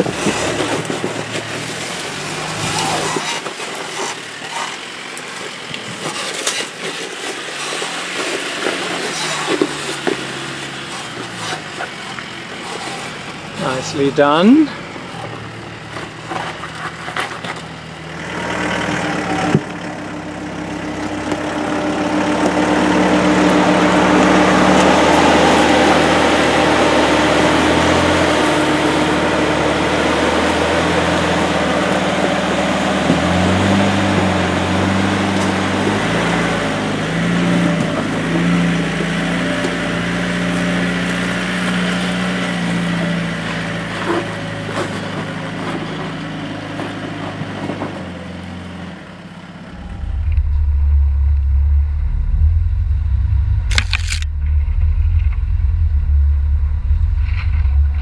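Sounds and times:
off-road vehicle engine at low revs: 0.0 - 58.0.

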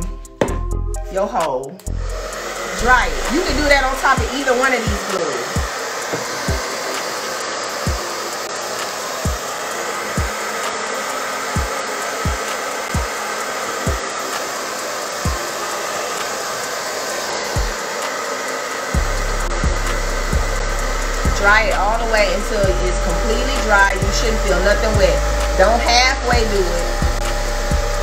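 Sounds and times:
bass beat music: 0.0 - 4.5, 19.0 - 28.0
hair dryer blowing: 0.0 - 28.0.

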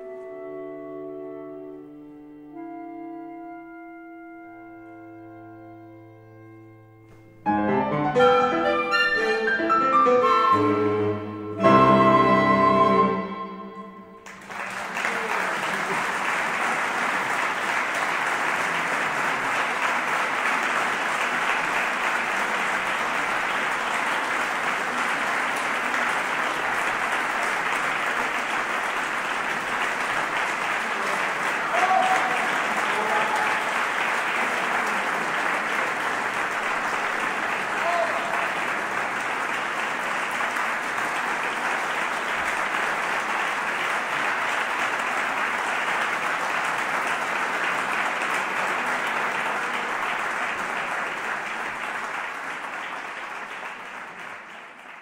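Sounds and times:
audience applauding: 11.7 - 55.0
crowd calling out: 31.6 - 33.8.

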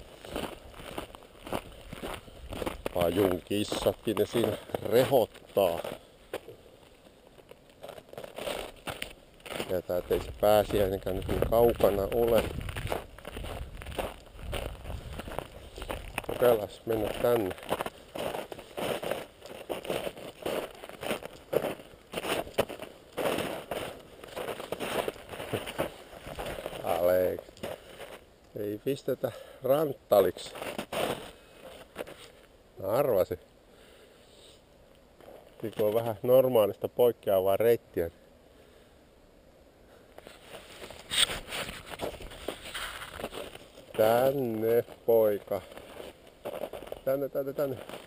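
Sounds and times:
footsteps crunching in snow: 0.0 - 28.3, 30.2 - 32.6, 40.2 - 48.0.

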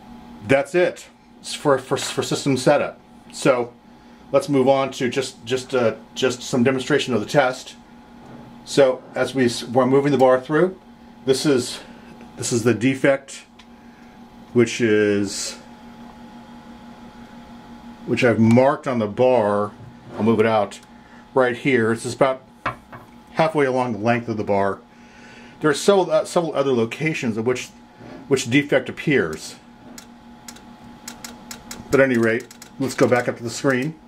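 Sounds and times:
steady equipment hum: 0.0 - 34.0.

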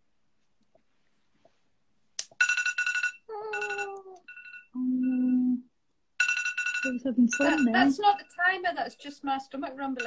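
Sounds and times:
electronic alarm melody: 2.4 - 5.6, 6.2 - 8.4.

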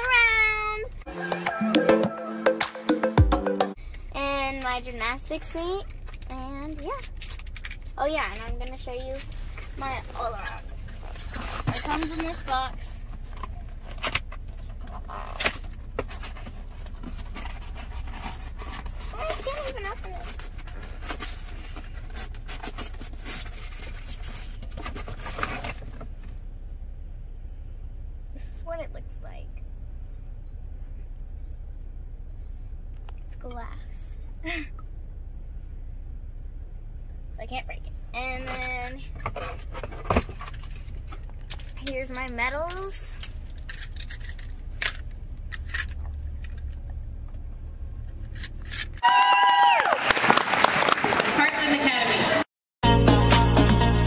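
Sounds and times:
low rumble inside a car: 3.7 - 49.0.

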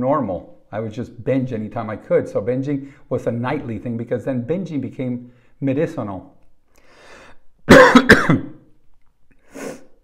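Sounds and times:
man coughing and clearing throat: 7.7 - 8.7.

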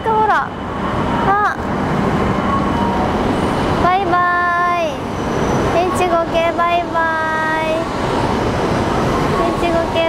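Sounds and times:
train departing: 0.0 - 10.0.

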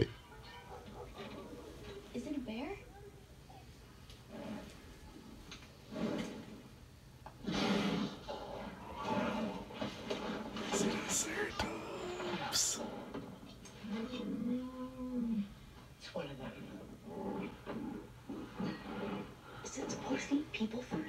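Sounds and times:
characters' voices on television: 0.0 - 21.0.

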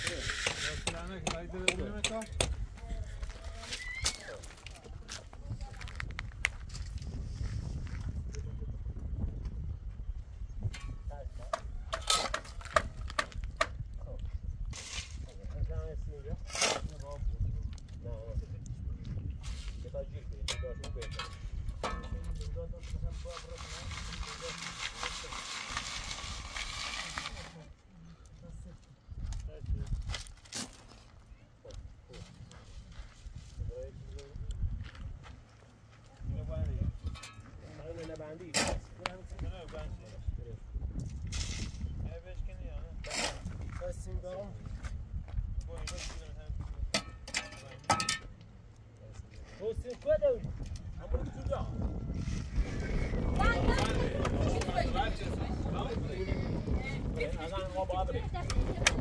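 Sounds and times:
shovel scraping dirt: 0.0 - 1.1, 11.9 - 13.2, 14.7 - 15.3, 16.4 - 17.1, 23.2 - 27.7, 38.5 - 39.0, 41.2 - 41.9, 43.0 - 43.7
soil rattling through sieve: 23.4 - 27.6.

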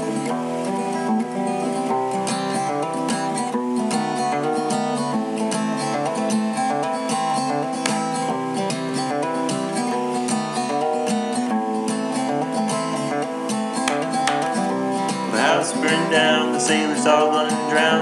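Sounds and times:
acoustic guitar strumming: 0.0 - 18.0.

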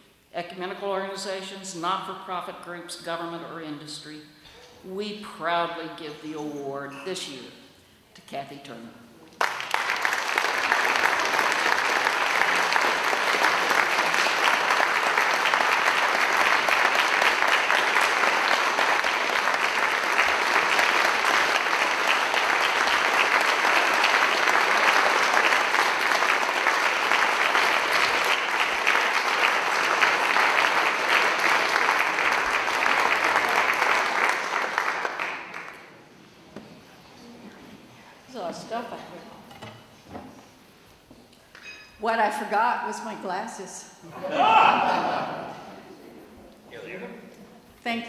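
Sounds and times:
large audience applauding: 9.4 - 36.0.

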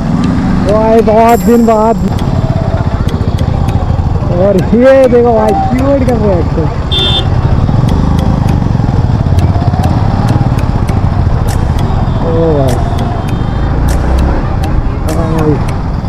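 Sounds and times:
motorcycle engine low rumble: 0.0 - 16.0
people's voices: 0.6 - 6.8, 7.8 - 15.9.

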